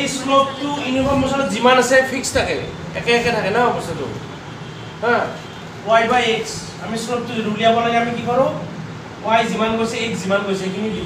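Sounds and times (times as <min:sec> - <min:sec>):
man speaking: 0:00.0 - 0:04.3, 0:05.0 - 0:11.0
low background noise: 0:00.0 - 0:11.0.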